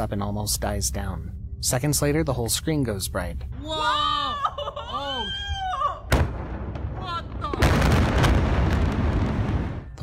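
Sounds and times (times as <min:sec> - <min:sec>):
long rumbling blast: 0:06.1 - 0:10.0.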